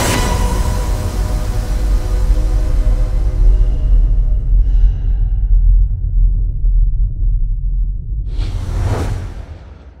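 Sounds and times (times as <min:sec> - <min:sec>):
deep low rumble: 0:01.7 - 0:10.0
whoosh effect: 0:08.3 - 0:10.0.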